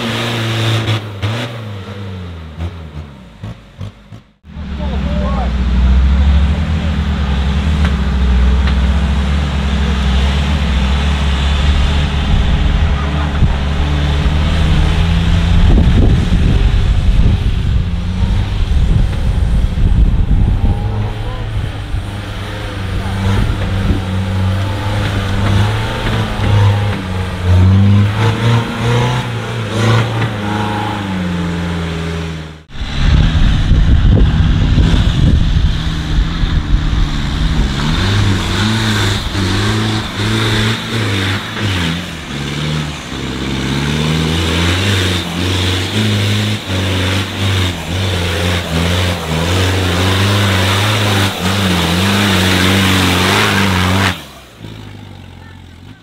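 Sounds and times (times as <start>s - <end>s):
off-road engines revving: 0.0s - 56.0s
loud rushing noise: 4.4s - 54.7s.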